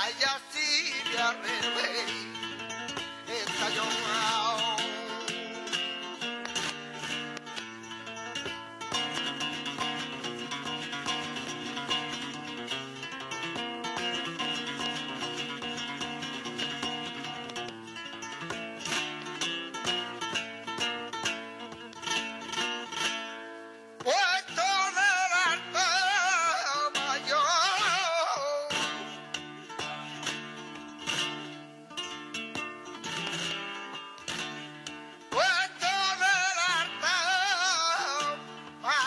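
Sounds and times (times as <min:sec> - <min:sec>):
flamenco guitar: 0:00.0 - 0:39.0
man singing flamenco: 0:00.0 - 0:39.0.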